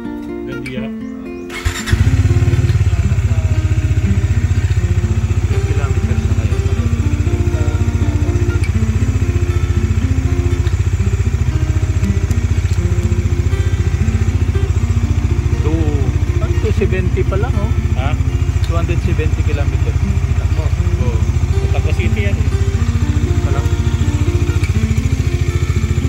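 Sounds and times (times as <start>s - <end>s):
motorcycle engine idling: 1.5s - 26.0s.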